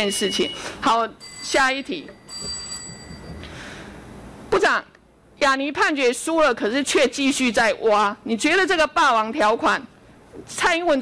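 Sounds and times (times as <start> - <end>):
high electronic ringing tone: 0.0 - 3.4.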